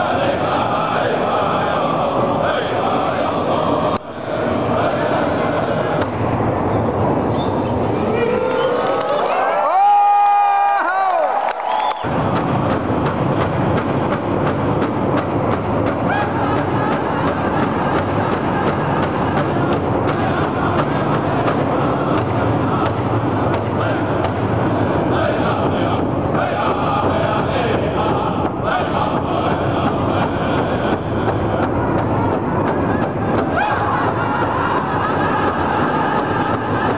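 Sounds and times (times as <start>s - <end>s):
voices singing: 0.0s - 9.0s, 12.1s - 36.9s
big drum struck in unison: 12.1s - 36.9s.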